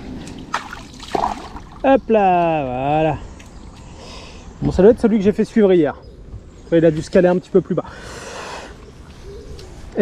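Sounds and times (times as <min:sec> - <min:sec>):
dove cooing: 0:08.4 - 0:09.9.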